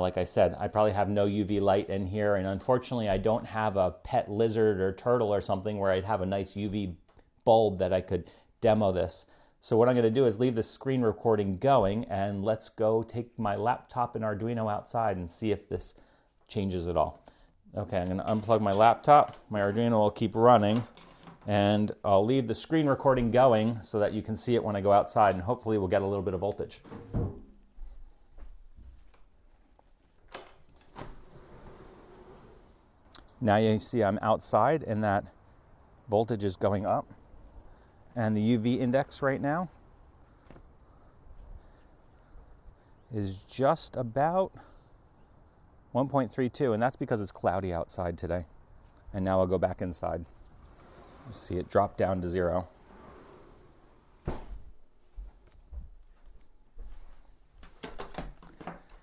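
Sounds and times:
faint background noise: 0.0s - 59.0s
handling thump: 54.2s - 54.7s.

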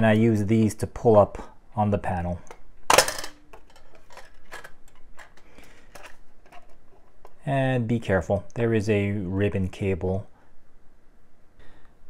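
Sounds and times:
light clicks and rustling handling: 2.3s - 7.4s.

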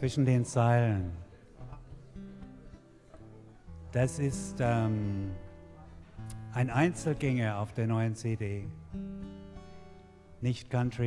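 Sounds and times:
acoustic guitar low note: 0.4s - 11.0s
person speaking: 3.9s - 8.8s
finger ticks on guitar strings: 6.2s - 6.5s.

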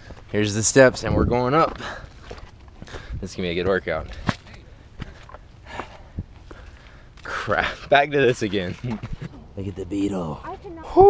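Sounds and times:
footsteps on dirt steps: 0.0s - 9.4s.

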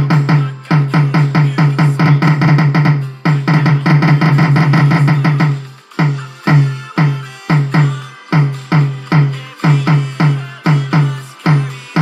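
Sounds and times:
heavy bass and drum hits: 0.0s - 12.0s.

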